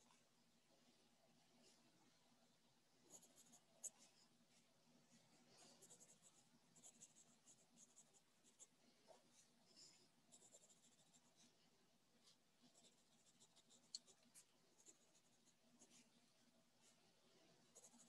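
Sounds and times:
pen scratching on paper: 3.1s - 4.1s, 5.8s - 8.7s, 10.3s - 11.4s, 12.7s - 16.0s, 17.7s - 18.0s.

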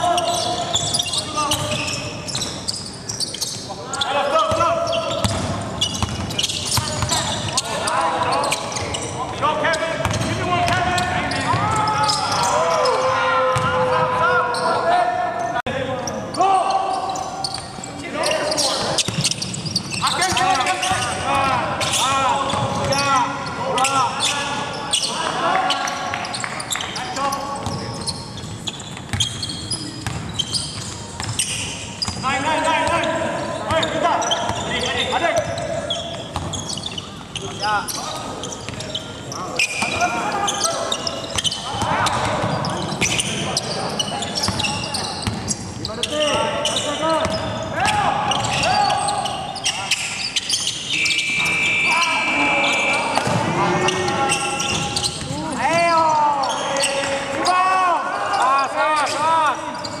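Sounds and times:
players calling out: 0.0s - 60.0s
sneakers squeaking: 0.0s - 60.0s
high whistle blast: 50.9s - 53.3s.

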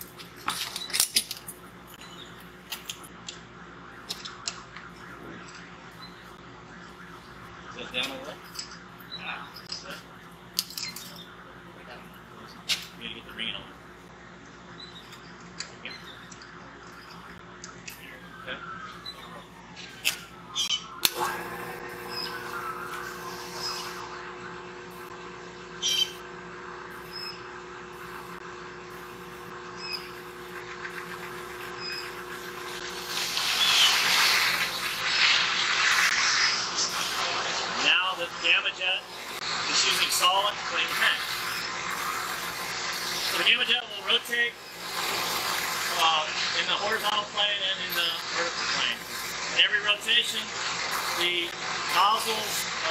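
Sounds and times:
pump humming: 21.0s - 35.6s
water jet spraying hiss: 30.2s - 52.9s.

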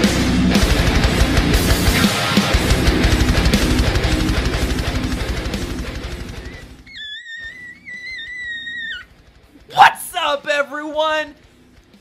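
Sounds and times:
distorted electric guitar: 0.0s - 6.9s
fast kick drum: 0.6s - 6.8s.

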